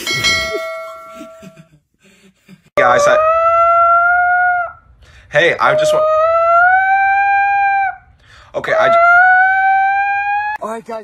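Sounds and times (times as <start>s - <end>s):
bell-like chime ringing: 0.0s - 1.6s
dog howling: 2.8s - 4.8s, 5.4s - 10.6s.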